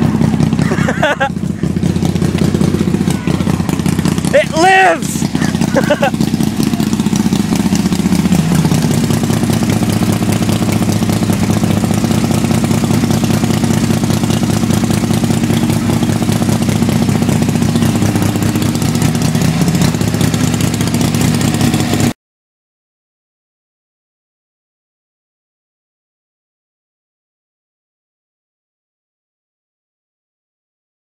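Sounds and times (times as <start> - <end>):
motorcycle engine running: 0.0 - 22.2.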